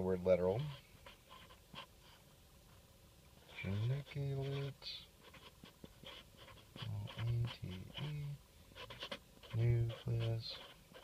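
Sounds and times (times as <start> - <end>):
marker scratching on cardboard: 0.0 - 2.8, 3.4 - 11.0.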